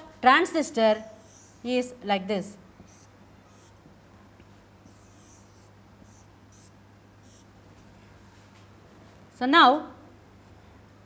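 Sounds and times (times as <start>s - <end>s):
marker drawing on whiteboard: 0.7s - 1.8s, 2.8s - 3.8s, 4.8s - 7.5s.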